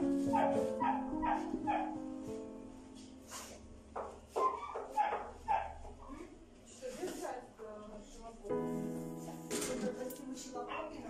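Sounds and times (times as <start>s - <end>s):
dog barking: 0.3s - 2.0s, 4.4s - 5.9s.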